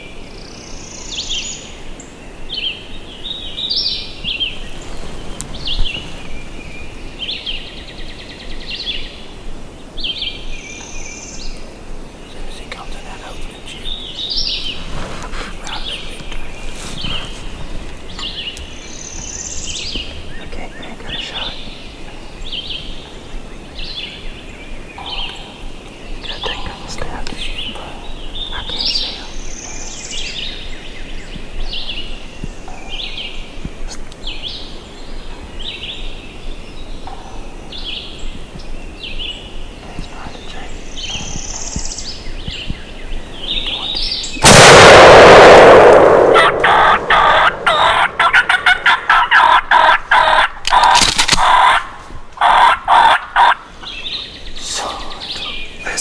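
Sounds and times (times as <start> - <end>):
small birds chirping: 0.0 - 45.5, 46.6 - 56.0
loud shotgun shot: 44.4 - 47.6.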